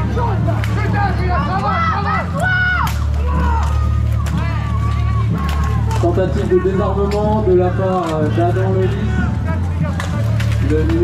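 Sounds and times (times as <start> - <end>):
people shouting: 0.0 - 10.1.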